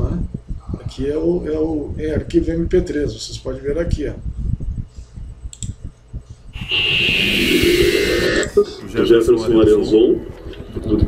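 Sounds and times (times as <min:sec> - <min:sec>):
rushing hiss: 0:06.6 - 0:08.4
low band of sound: 0:06.6 - 0:08.7
loud steady high tone: 0:06.6 - 0:08.8.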